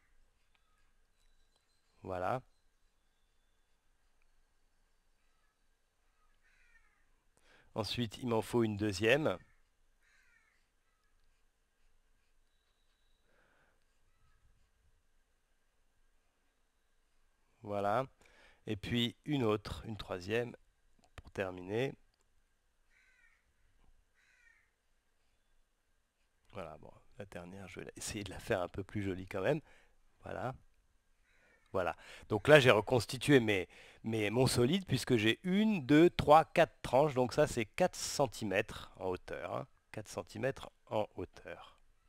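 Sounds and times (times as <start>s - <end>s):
faint high-pitched sounds: 0.0s - 18.1s.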